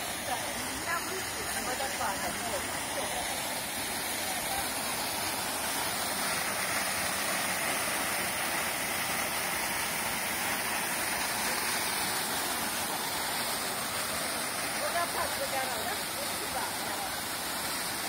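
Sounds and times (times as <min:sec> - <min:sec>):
waterfall pouring into a pool: 0:00.0 - 0:18.0.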